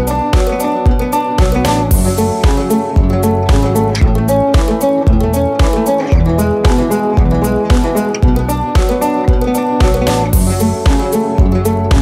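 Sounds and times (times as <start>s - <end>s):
guitar music over steady beat: 0.0s - 12.0s.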